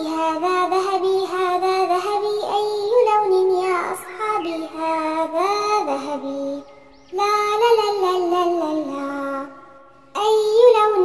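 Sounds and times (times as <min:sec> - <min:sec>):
child singing: 0:00.0 - 0:11.0
children's song music: 0:00.0 - 0:11.0.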